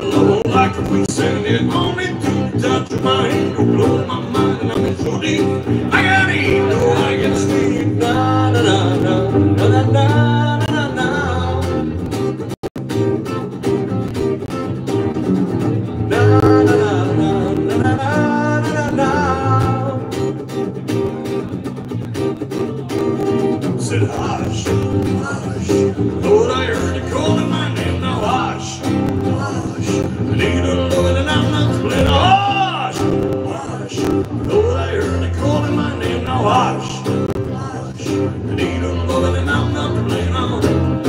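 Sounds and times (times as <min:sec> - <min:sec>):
person singing: 0:00.0 - 0:12.0, 0:16.0 - 0:20.5, 0:22.7 - 0:41.0
acoustic guitars strummed: 0:00.0 - 0:41.0.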